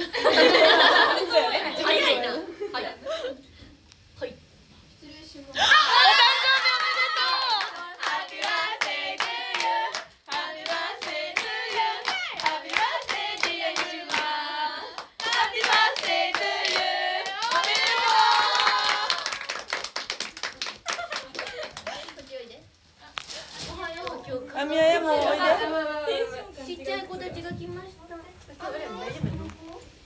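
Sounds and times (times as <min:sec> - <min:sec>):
women singing unaccompanied: 0:07.1 - 0:19.0
hands clapping to a beat: 0:07.2 - 0:14.3, 0:15.0 - 0:22.2.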